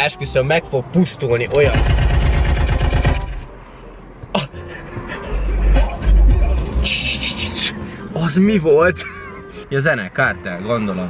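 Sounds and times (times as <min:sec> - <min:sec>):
car stereo blaring bass-heavy music: 0:04.1 - 0:10.0.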